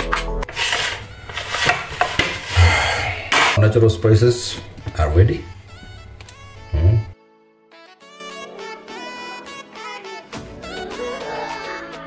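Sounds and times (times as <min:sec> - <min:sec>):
background music: 0:00.0 - 0:12.0
knife scraping on cutting board: 0:00.4 - 0:02.8.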